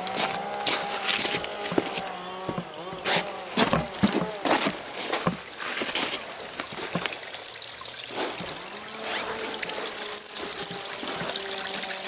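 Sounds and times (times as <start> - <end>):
atv engine buzzing: 0.0 - 4.9, 8.8 - 12.0.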